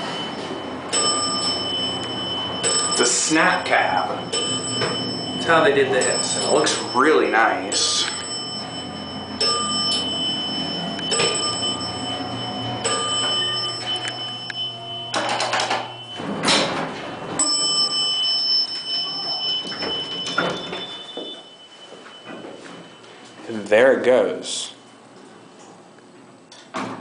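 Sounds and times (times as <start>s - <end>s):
elevator hum and whine: 0.0s - 27.0s
elevator doors sliding open: 7.8s - 21.5s.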